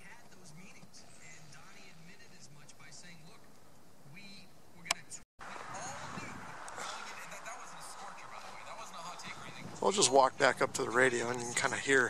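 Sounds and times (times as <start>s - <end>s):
distant radio talk: 0.0s - 12.0s.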